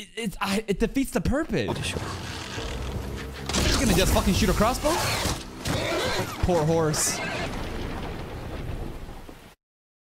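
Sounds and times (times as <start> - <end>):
horse whinny: 4.9 - 7.6.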